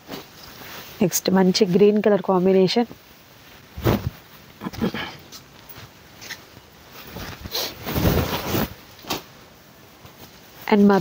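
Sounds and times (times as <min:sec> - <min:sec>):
fabric rustling and swishing: 0:00.0 - 0:04.6, 0:05.6 - 0:11.0.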